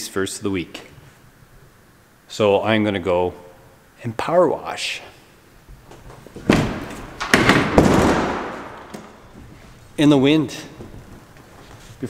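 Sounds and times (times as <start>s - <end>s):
thumps and knocks: 5.8s - 9.6s
sharp knock: 6.5s - 9.2s.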